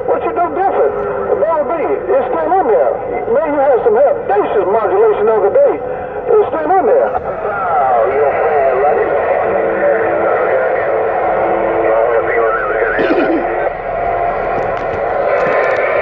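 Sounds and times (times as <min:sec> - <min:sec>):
garbled radio voices: 0:00.0 - 0:16.0
radio static: 0:00.0 - 0:16.0
steady tone: 0:00.0 - 0:16.0.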